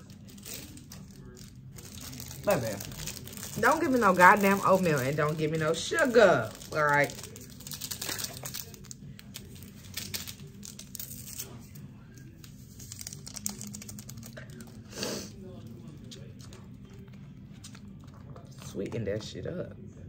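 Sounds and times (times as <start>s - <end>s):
paper packet being torn and crumpled: 0.0s - 15.0s.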